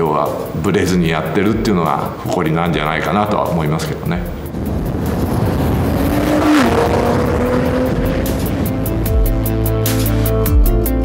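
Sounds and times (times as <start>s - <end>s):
background music: 0.0s - 11.0s
car engine accelerating past: 4.5s - 9.5s.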